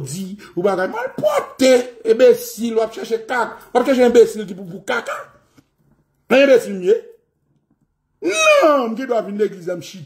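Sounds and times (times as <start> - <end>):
man talking: 0.0 - 5.4, 6.3 - 7.2, 8.2 - 10.0
man's drawn-out vocal exclamation: 8.2 - 9.0.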